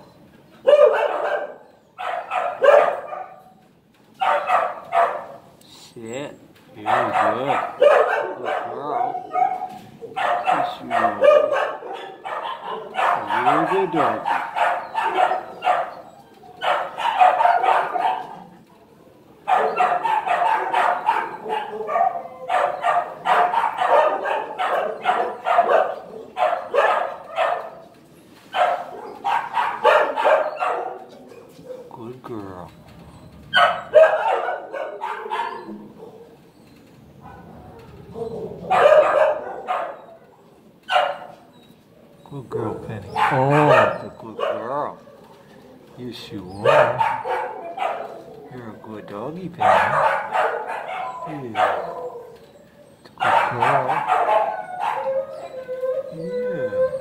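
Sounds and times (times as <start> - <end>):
dogs howling: 0.6 - 3.5, 6.8 - 28.0, 28.6 - 57.0
many dogs barking: 0.6 - 3.6, 4.2 - 5.5, 6.8 - 27.9, 28.5 - 32.1, 33.5 - 36.5, 37.2 - 41.5, 42.3 - 57.0.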